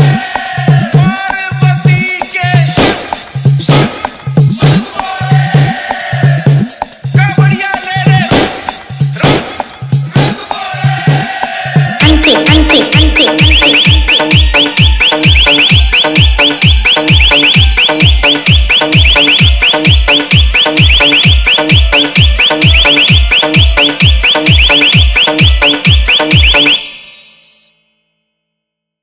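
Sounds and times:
fast kick drum: 0.0 - 4.9, 6.5 - 10.4, 11.1 - 26.8
hard bass dance track: 0.0 - 4.9, 12.0 - 27.5
rapid high-pitched chirp: 12.0 - 27.6.

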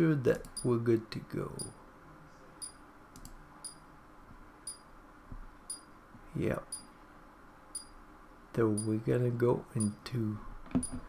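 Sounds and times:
soft clicks: 2.6 - 3.4.

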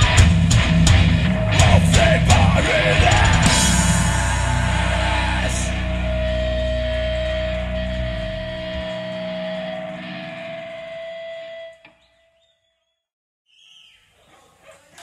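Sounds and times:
steady high tone: 1.1 - 11.8.

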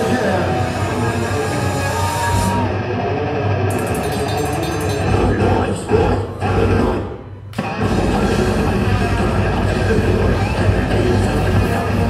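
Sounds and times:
death metal band playing live: 7.6 - 12.0.

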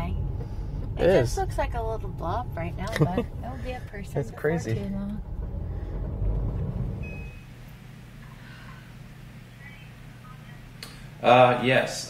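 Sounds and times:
low rumble inside car cabin: 0.0 - 10.8
faint steady hum: 0.0 - 12.0.

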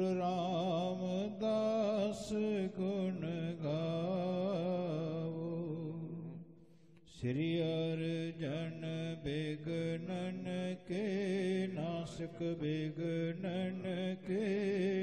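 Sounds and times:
man chanting: 0.0 - 6.4, 7.1 - 15.0.

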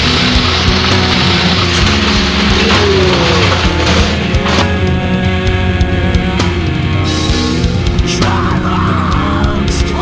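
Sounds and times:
shopping cart wheels rattling on asphalt: 0.0 - 4.7
heavy rock music: 0.0 - 10.0.

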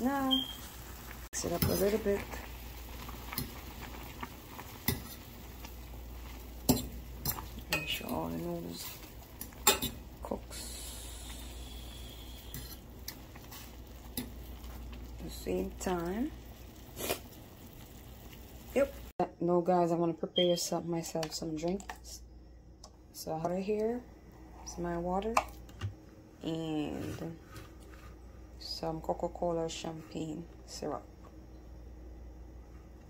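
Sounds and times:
pot of noodles simmering: 0.1 - 19.1.

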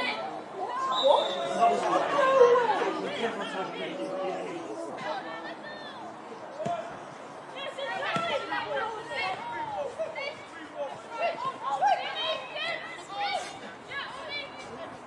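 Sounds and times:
shouting and chatter of voices: 0.0 - 15.0.

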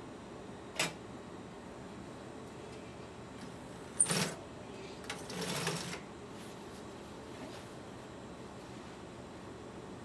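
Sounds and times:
sewing machine stitching: 5.1 - 6.0.

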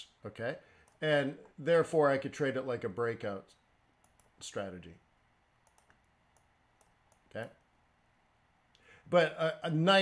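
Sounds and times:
computer mouse clicks: 0.8 - 1.0, 4.0 - 4.4, 5.6 - 7.7.

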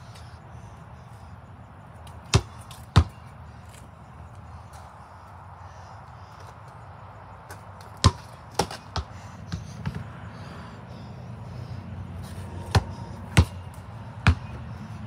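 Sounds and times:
basketball bouncing on concrete: 2.2 - 3.3, 7.5 - 10.3, 12.2 - 14.6.

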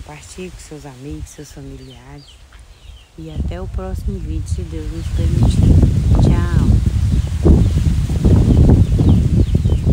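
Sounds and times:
leaves rustling: 0.0 - 9.9
wind buffeting microphone: 0.0 - 9.9.

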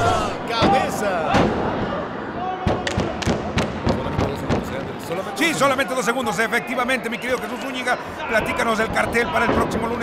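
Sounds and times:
crowd voices in arena: 0.0 - 10.0.

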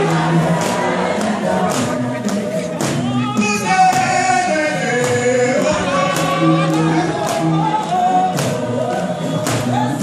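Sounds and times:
group gospel singing: 0.0 - 10.0
sharp percussive hits: 5.0 - 8.7.

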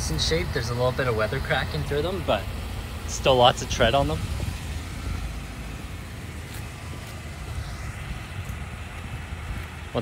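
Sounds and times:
vehicle engine idling: 0.0 - 10.0
wind noise on microphone: 4.2 - 5.3.

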